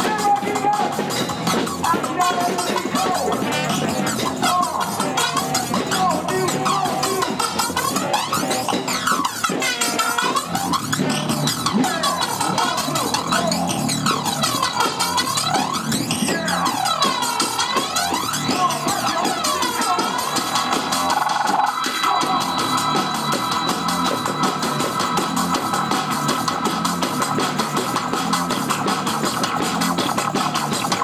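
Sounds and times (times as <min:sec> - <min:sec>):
person beatboxing into microphone: 0:00.0 - 0:23.2.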